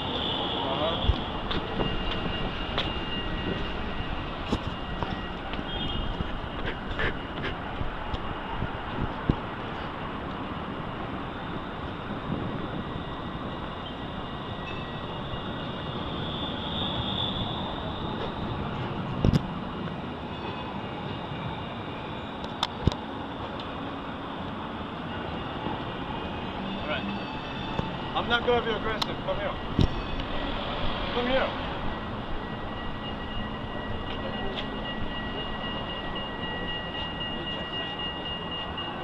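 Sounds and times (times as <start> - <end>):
city street traffic: 0.0 - 39.0.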